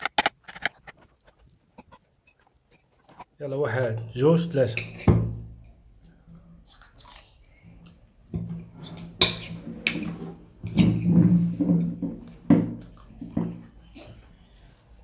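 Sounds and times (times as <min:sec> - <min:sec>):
person chewing: 0:00.0 - 0:03.3, 0:06.7 - 0:08.0
forks scraping on ceramic plates: 0:08.8 - 0:11.0.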